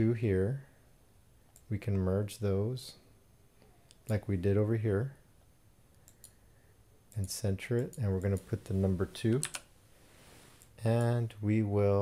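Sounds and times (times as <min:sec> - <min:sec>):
computer mouse clicks: 0:05.9 - 0:06.4, 0:07.1 - 0:08.5, 0:09.3 - 0:09.7.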